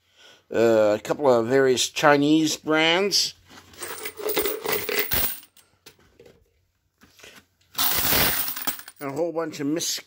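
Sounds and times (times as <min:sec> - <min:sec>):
brass cartridge cases clinking: 0:03.8 - 0:05.6.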